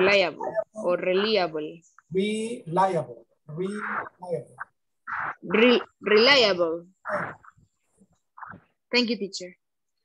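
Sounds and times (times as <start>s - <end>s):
voices on a video call: 0.0s - 10.0s.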